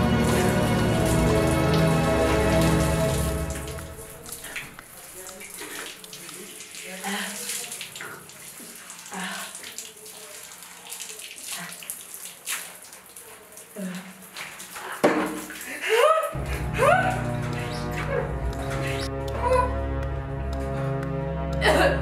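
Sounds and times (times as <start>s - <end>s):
background music: 0.0s - 4.9s, 16.4s - 22.0s
tap water splashing: 0.0s - 15.8s, 16.4s - 21.7s.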